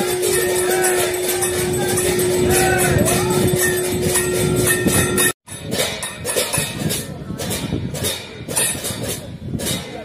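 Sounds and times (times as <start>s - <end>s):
fast jingling and percussion: 0.0s - 9.8s.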